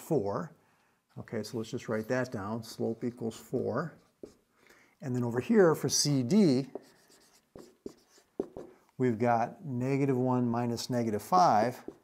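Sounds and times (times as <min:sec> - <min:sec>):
marker writing on a whiteboard: 0:02.0 - 0:04.5, 0:05.8 - 0:08.9, 0:11.2 - 0:12.0.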